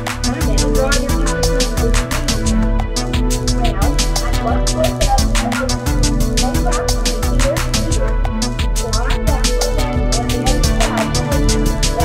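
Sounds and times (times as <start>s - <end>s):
steady synth bass: 0.0s - 12.0s
ticking electronic percussion: 0.0s - 12.0s.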